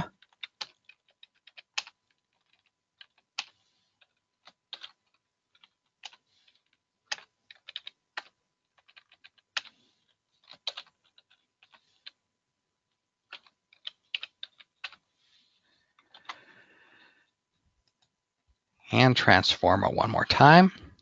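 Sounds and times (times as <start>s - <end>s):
typing on computer keyboard: 0.0s - 12.2s, 13.3s - 15.0s.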